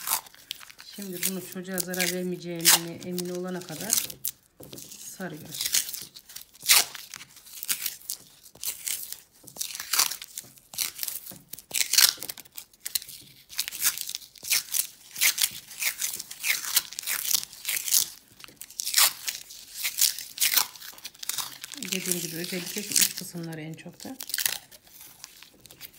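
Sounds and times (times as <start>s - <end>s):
masking tape ripping off roll: 0.0s - 25.9s
tape crinkling: 0.0s - 25.9s.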